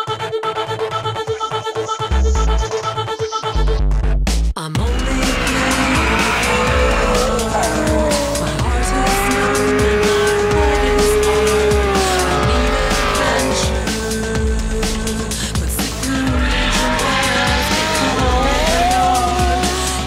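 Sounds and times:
electronic music with steady beat: 0:04.6 - 0:20.0
car engine at high revs: 0:04.9 - 0:20.0.

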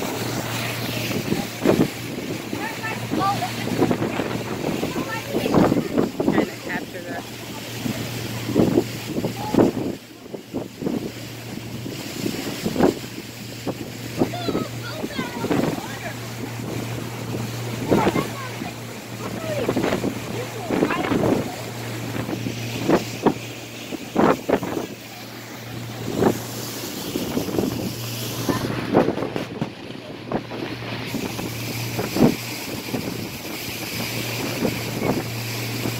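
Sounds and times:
boat engine humming: 0:00.0 - 0:35.9
water rushing past hull: 0:00.0 - 0:35.9
wind buffeting microphone: 0:00.0 - 0:35.9.

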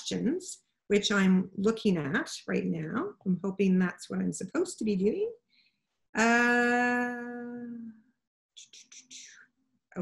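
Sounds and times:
woman whispering: 0:08.6 - 0:09.5.

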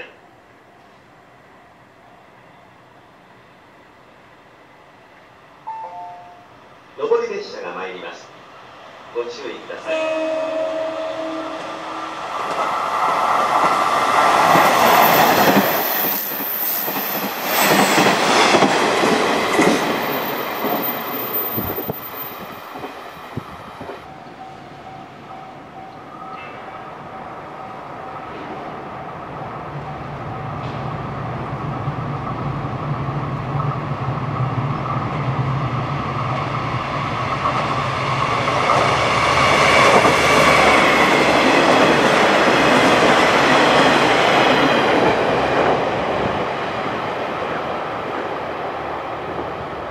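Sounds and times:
train engine hum: 0:00.0 - 0:49.9
train wheels clattering on rail joints: 0:13.5 - 0:23.0.

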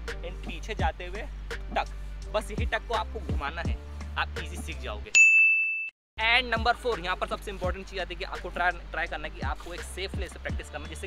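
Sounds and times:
bright electronic ding: 0:05.2 - 0:05.9.

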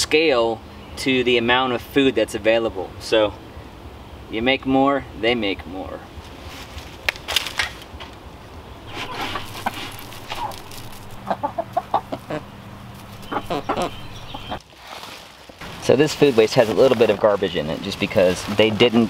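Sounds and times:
steady low hum: 0:00.0 - 0:14.6
hens clucking: 0:08.8 - 0:14.8.

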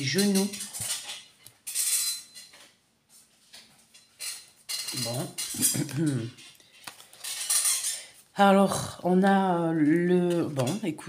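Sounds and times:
faint card rustles: 0:06.5 - 0:07.6.

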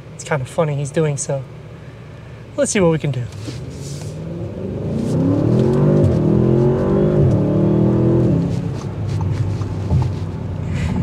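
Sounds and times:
car engine accelerating: 0:03.3 - 0:11.0.

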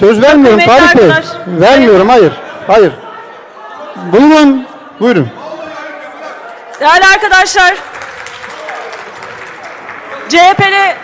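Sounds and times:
applause: 0:06.7 - 0:11.0.

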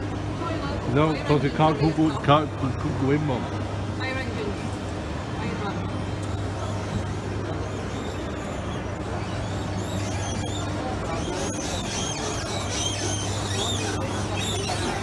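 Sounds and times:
escalator hum: 0:03.4 - 0:15.0.

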